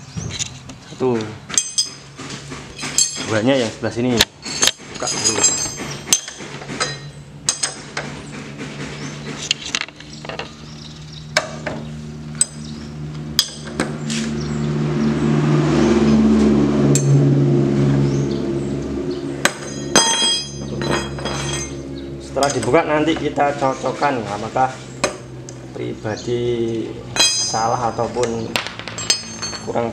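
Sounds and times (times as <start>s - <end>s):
metal spanner clinking: 1.5s - 2.1s, 2.7s - 3.4s, 4.2s - 7.8s, 12.4s - 12.7s, 19.4s - 22.8s, 27.2s - 29.8s
low drone: 7.5s - 29.9s.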